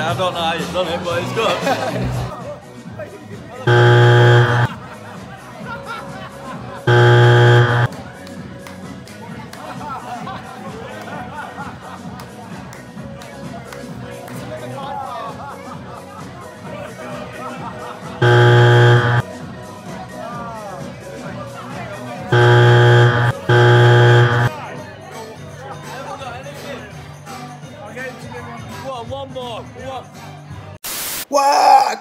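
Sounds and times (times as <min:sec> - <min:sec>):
music: 0:00.0 - 0:30.8
loud buzzer tone: 0:03.7 - 0:04.7, 0:06.9 - 0:07.9, 0:18.2 - 0:19.2, 0:22.3 - 0:24.5.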